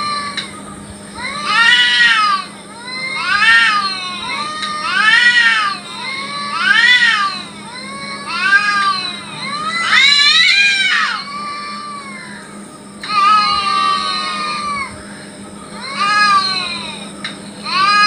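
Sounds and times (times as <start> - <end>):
cats yowling: 0.0 - 18.0.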